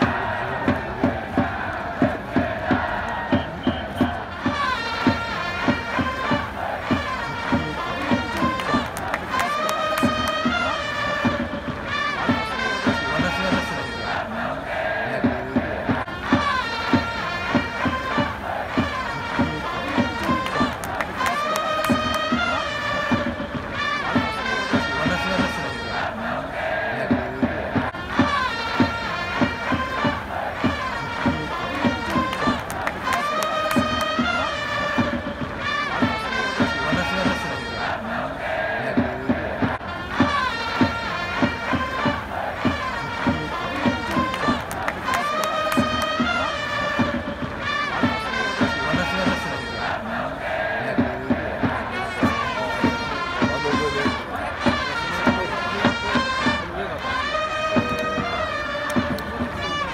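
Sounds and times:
crowd chanting and singing: 0:00.0 - 0:59.9
steady drum beat: 0:00.0 - 0:59.9
trumpets: 0:00.0 - 0:59.9.

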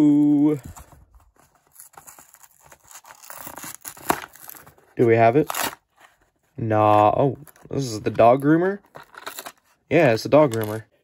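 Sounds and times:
cardboard box ripping and crinkling: 0:00.7 - 0:05.8.

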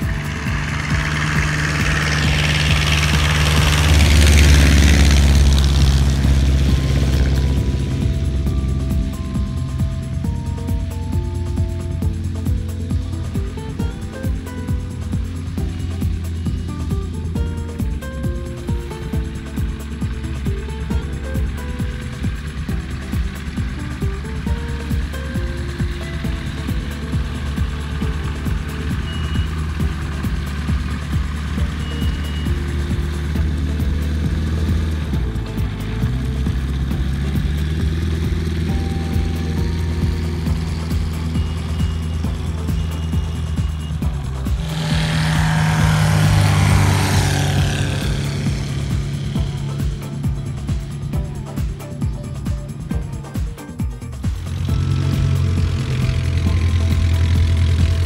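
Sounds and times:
background music: 0:00.0 - 0:58.0
light aircraft engine and propeller: 0:00.0 - 0:58.0.

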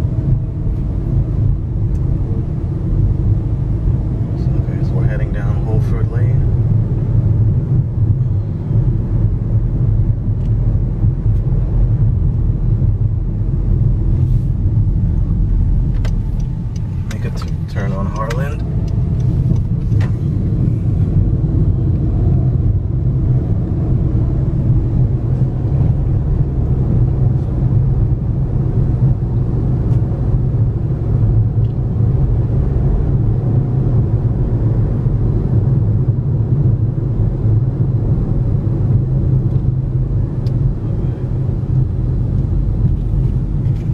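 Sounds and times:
car engine and tyres rumbling: 0:00.0 - 0:43.9.

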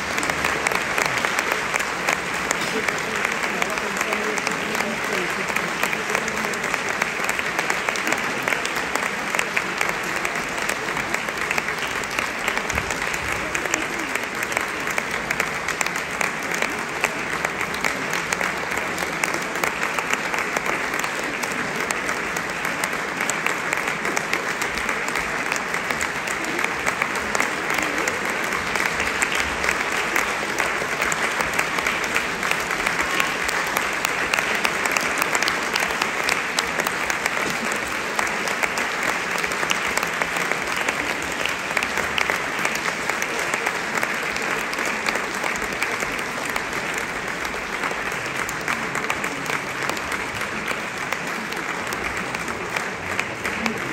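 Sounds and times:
audience applauding: 0:00.0 - 0:53.9.

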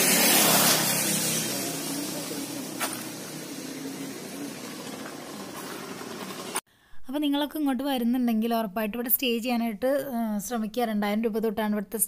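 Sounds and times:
low engine hum: 0:00.0 - 0:06.6
passing vehicles hiss: 0:00.0 - 0:06.6.

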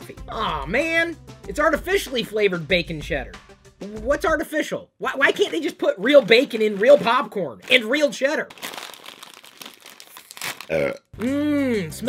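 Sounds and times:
plastic snack bag crinkling: 0:05.4 - 0:10.8.

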